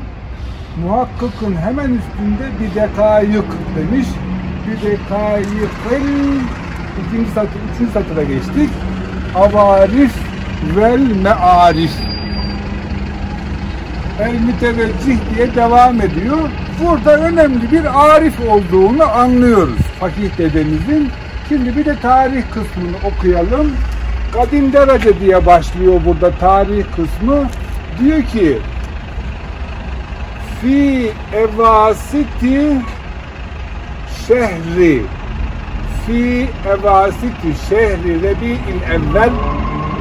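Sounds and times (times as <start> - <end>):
bus engine idling: 0.0 - 40.0
man's voice: 0.8 - 12.1, 14.2 - 28.7, 30.4 - 33.0, 34.1 - 35.1, 35.9 - 39.7.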